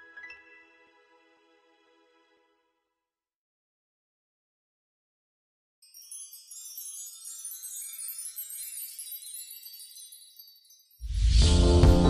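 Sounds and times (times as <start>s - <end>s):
high tinkling chimes: 5.8s - 11.6s.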